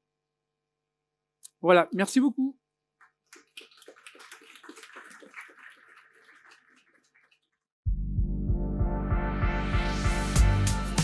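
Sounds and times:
audience applauding faintly: 3.3s - 7.6s.

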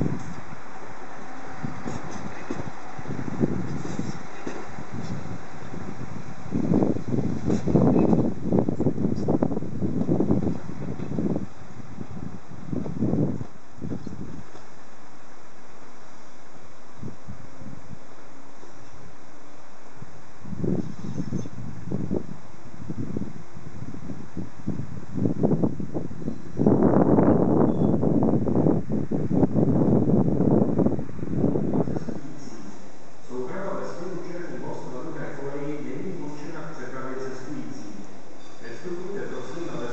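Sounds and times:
wind buffeting microphone: 0.0s - 14.9s, 15.6s - 39.9s.

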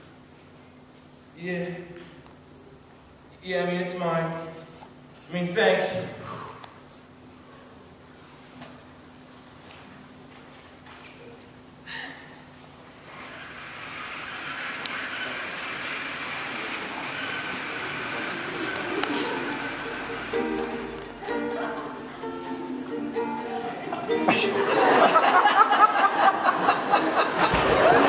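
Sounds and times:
audience voices: 14.5s - 28.0s
acoustic guitar strummed and plucked: 17.5s - 24.8s.

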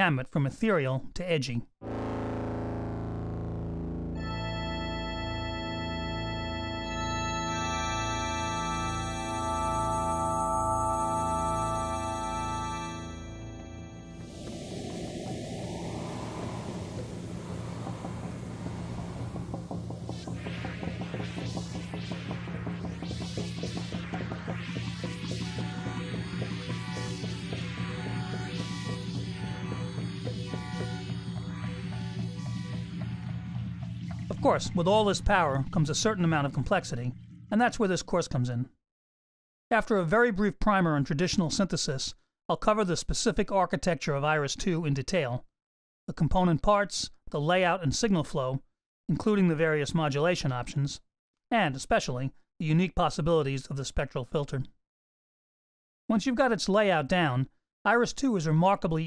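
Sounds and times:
low buzzy synthesizer note: 1.8s - 35.6s.

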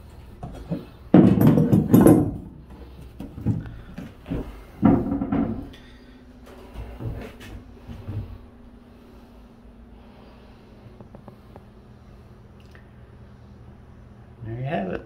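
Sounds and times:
floor panels knocking and clattering: 0.4s - 5.8s.

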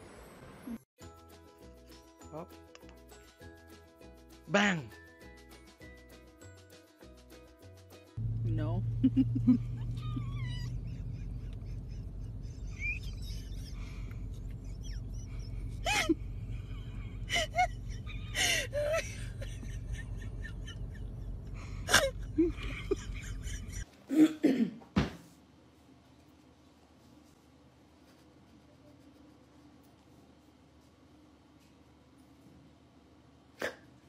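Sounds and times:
low outdoor background noise: 8.2s - 34.0s.

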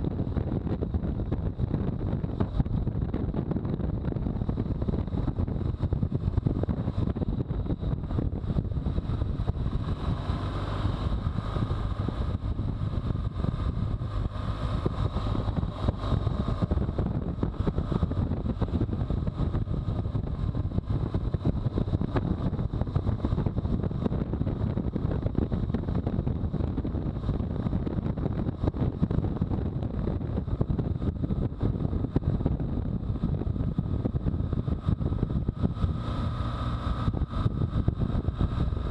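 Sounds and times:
motorcycle engine running: 0.0s - 38.9s
wind noise on microphone: 0.0s - 38.9s.

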